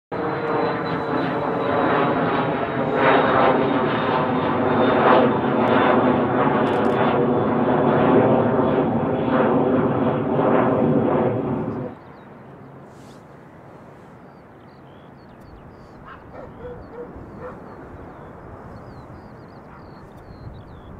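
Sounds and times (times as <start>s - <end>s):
jet engine roar: 0.1s - 20.9s.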